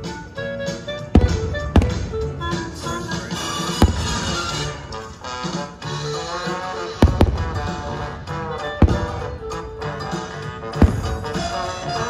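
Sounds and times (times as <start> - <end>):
distant firework bursts: 0.0 - 12.0
music playing: 0.0 - 12.0
sharp firework bangs: 1.1 - 12.0.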